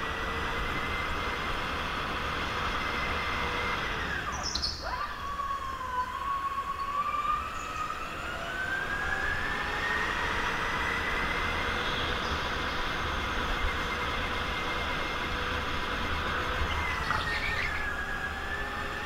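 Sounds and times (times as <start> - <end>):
go-kart engine whine: 0.0 - 19.0
tyre squeal: 16.7 - 18.0.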